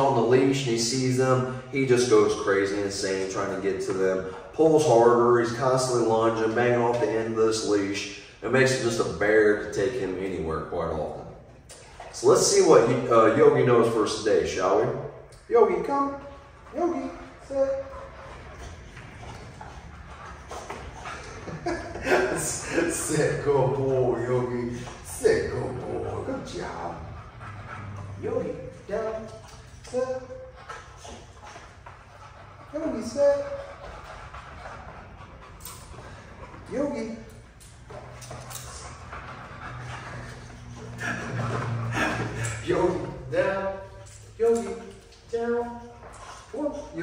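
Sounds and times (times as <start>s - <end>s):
low room rumble: 0.0s - 47.0s
dog panting: 11.8s - 47.0s.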